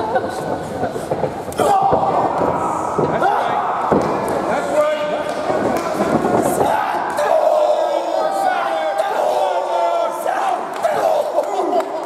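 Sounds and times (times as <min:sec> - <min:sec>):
crowd yelling and shouting: 0:01.5 - 0:12.0.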